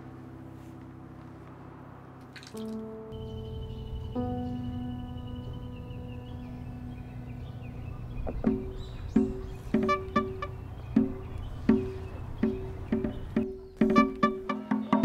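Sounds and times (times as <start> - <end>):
background music with repeating notes: 0.0 - 15.0
steady low rumble: 3.1 - 13.8.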